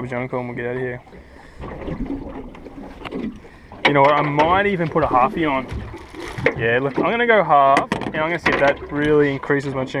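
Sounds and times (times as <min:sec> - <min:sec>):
water noise: 0:00.0 - 0:10.0
wind: 0:00.0 - 0:10.0.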